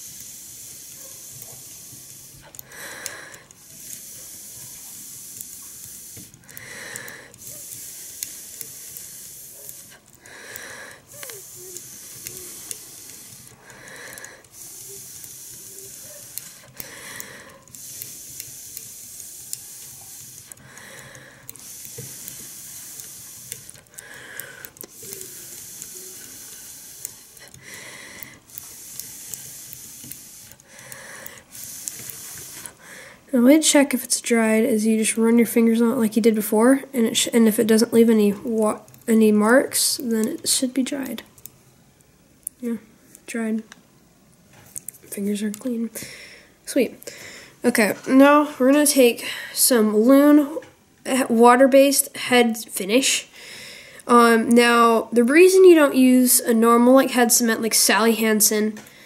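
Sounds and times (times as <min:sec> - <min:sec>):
person blowing air: 0:00.0 - 0:33.4
quick inhalations: 0:00.0 - 0:33.4, 0:45.9 - 0:47.6, 0:53.2 - 0:54.1.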